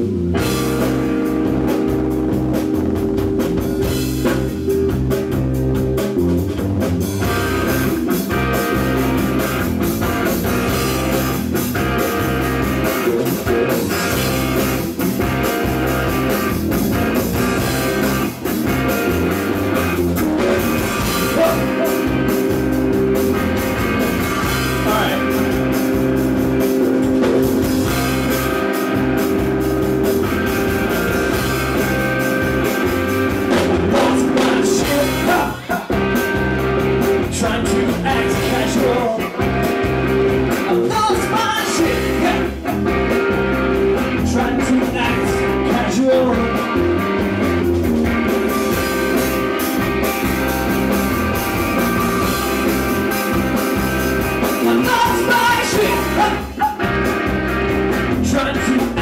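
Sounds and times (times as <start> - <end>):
bass guitar: 0.0 - 59.0
drum kit steady beat: 0.0 - 59.0
electric guitars: 0.0 - 59.0.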